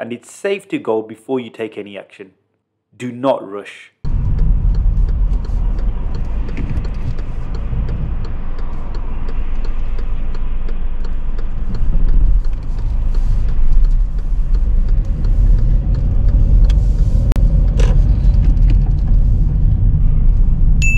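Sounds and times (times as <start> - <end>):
car engine and road rumble: 4.0 - 20.9
turn indicator ticking: 4.1 - 19.1.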